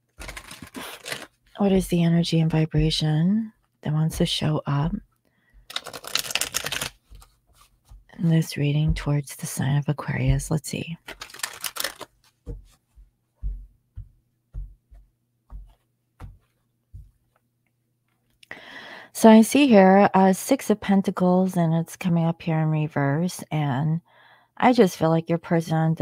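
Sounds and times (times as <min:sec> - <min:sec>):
cards being riffle-shuffled: 0:00.1 - 0:01.4, 0:05.7 - 0:08.0, 0:11.0 - 0:12.8
cards clicking: 0:05.7 - 0:07.3, 0:11.1 - 0:12.1.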